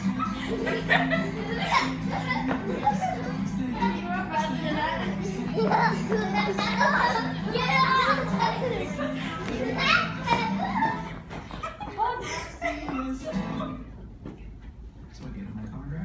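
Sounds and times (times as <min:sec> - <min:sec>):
background music: 0:00.0 - 0:11.5, 0:12.1 - 0:14.2
young children playing: 0:00.0 - 0:14.5.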